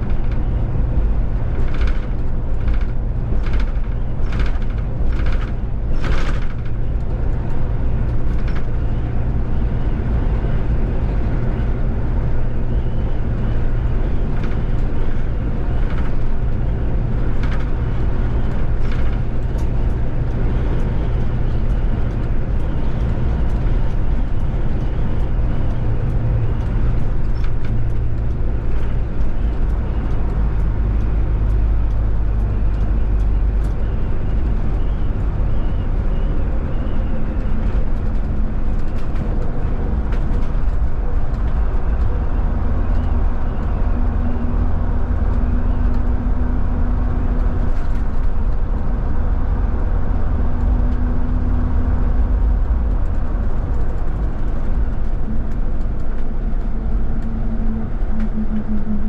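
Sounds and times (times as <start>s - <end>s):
bus road and tyre rumble: 0.0s - 59.0s
light clicks and rattles: 1.4s - 9.0s.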